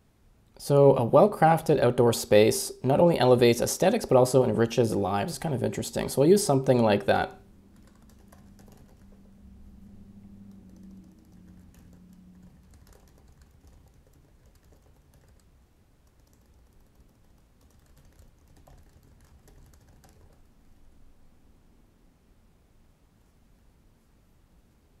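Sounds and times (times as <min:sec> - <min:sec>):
low hum: 0:04.3 - 0:17.6
typing on computer keyboard: 0:07.7 - 0:09.4, 0:10.4 - 0:20.5.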